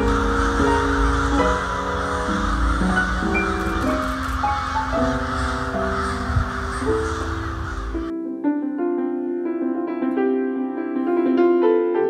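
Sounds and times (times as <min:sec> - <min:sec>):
crows cawing in chorus: 0:00.0 - 0:08.1
slow piano music: 0:00.0 - 0:12.0.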